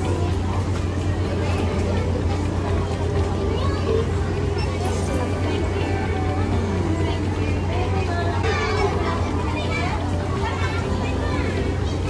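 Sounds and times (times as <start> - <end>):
children's voices: 0.0 - 12.0
indistinct chatter: 0.0 - 12.0.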